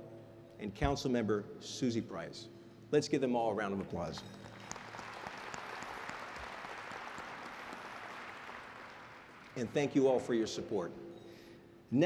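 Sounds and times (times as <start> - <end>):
audience applauding: 4.4 - 10.0.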